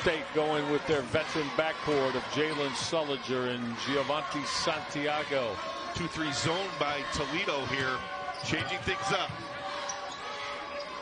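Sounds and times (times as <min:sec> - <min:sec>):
arena crowd noise: 0:00.0 - 0:11.0.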